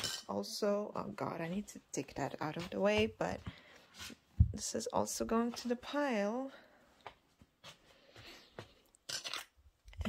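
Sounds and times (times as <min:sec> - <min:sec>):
books rustling and scraping on shelf: 0:01.4 - 0:04.7.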